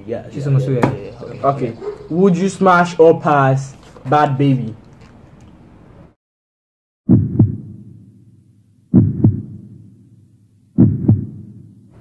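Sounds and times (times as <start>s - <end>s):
heartbeat double thump: 7.1s - 8.0s, 8.9s - 9.9s, 10.8s - 11.6s.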